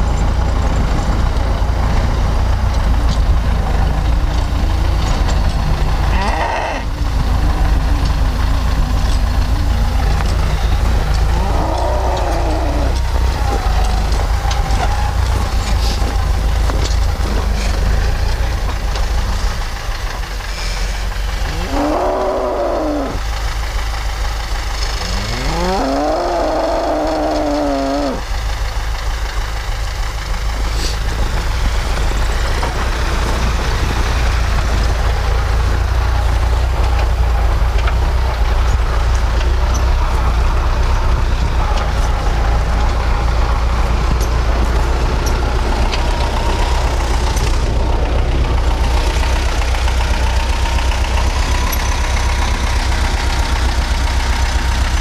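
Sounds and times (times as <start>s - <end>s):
steady low rumble: 0.0s - 55.0s
cow mooing: 6.1s - 6.9s, 11.2s - 13.8s, 21.4s - 23.2s, 25.0s - 28.2s.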